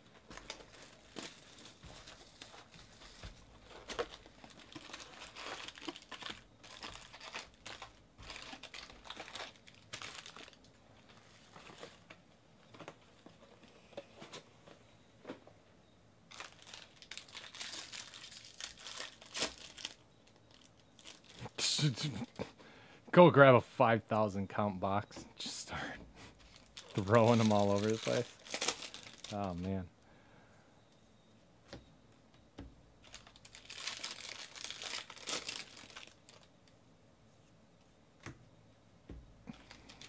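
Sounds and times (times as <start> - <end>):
plastic wrappers crinkling: 0.1 - 13.4, 16.3 - 21.6, 26.4 - 29.8, 33.0 - 36.8, 39.4 - 40.0.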